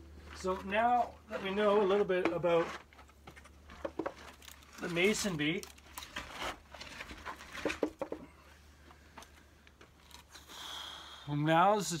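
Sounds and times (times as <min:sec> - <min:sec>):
light clicks and rustles: 0:08.8 - 0:10.4.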